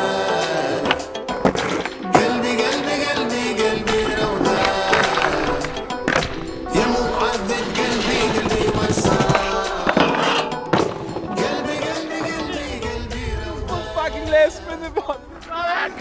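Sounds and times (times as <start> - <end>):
music soundtrack: 0.0 - 16.0
skateboard rolling: 0.7 - 14.0
skateboard clacks: 0.8 - 2.8, 3.8 - 12.6.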